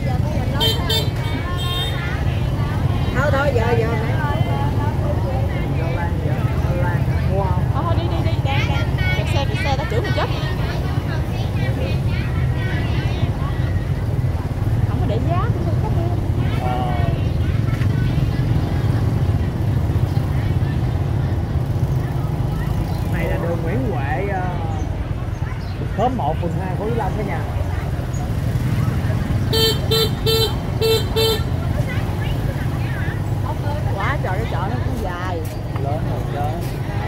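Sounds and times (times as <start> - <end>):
motorbike engine rumble: 0.0 - 37.0
voices of shoppers and vendors: 0.0 - 37.0.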